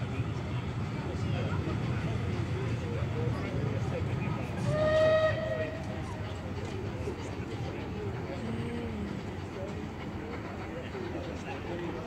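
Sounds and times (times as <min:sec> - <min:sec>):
low rumble of train: 0:00.0 - 0:12.0
steam whistle: 0:04.7 - 0:05.7.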